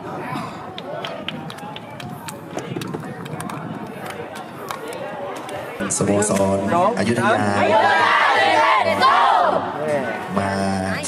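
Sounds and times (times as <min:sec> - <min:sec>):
outdoor chatter of voices: 0:00.0 - 0:11.0.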